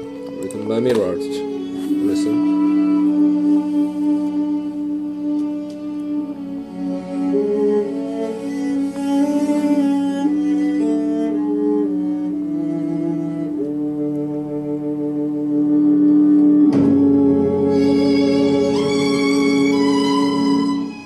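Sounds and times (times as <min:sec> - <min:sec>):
slow instrumental ballad: 0:00.0 - 0:21.0.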